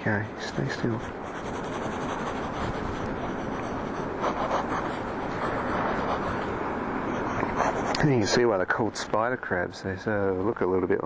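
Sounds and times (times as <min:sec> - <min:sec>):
pencil scratching on paper: 0:00.1 - 0:06.5, 0:07.1 - 0:08.1.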